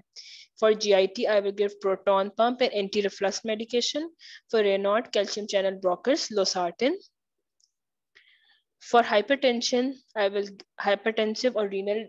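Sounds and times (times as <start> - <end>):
woman speaking: 0.6 - 7.1, 8.8 - 12.0.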